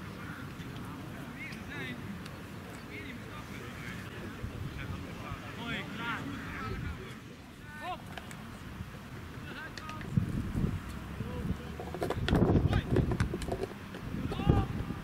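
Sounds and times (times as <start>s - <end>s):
footballers shouting and calling: 0.0s - 13.3s, 14.0s - 15.0s.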